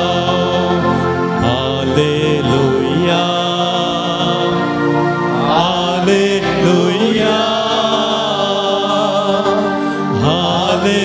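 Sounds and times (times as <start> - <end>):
hymn sung with vibrato: 0.0 - 11.0
sustained chords: 0.0 - 11.0.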